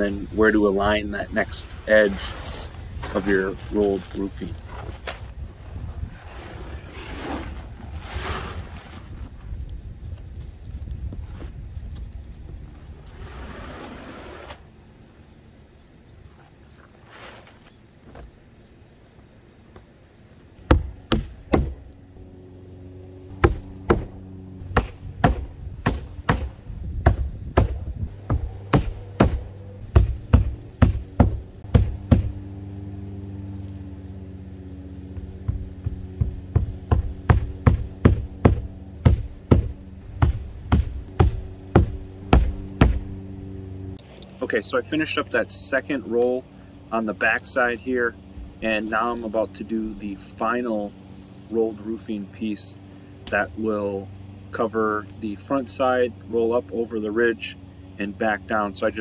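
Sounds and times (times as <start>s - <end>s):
roofing sheet rustling scrape: 1.6s - 9.5s, 12.9s - 15.2s, 17.0s - 17.7s
hammer striking nails: 20.7s - 21.8s, 27.1s - 32.4s, 35.4s - 43.0s.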